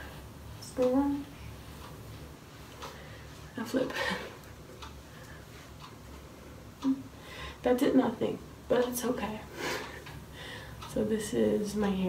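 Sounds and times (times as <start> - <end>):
clock ticking: 0.6 - 12.0.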